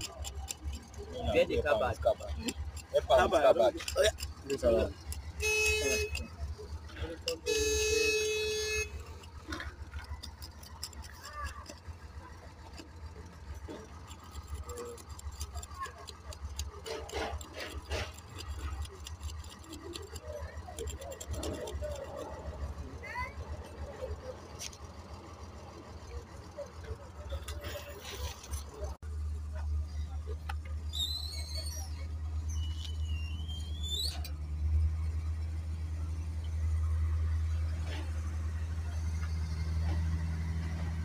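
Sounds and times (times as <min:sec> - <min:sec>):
people talking indistinctly: 0:00.4 - 0:07.9.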